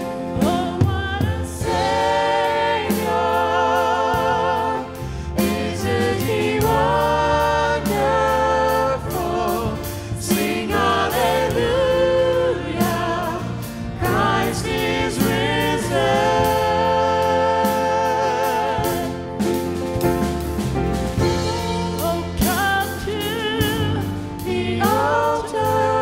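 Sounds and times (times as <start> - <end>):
band with bass and drums: 0.0 - 26.0
choir singing gospel song: 0.0 - 26.0.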